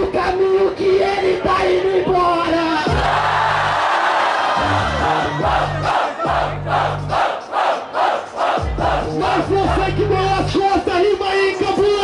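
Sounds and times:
hip-hop beat with deep bass: 0.0 - 3.8, 4.5 - 12.0
crowd shouting and cheering: 0.0 - 12.0.

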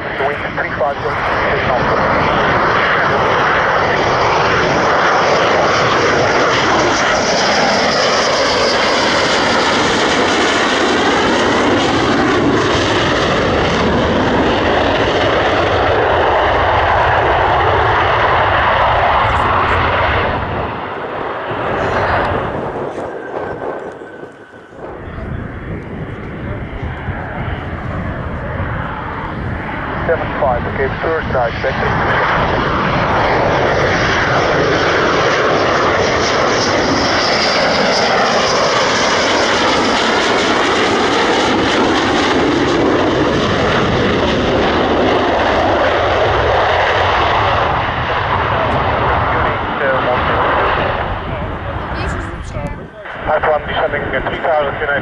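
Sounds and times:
jet engines passing low: 0.0 - 55.0.

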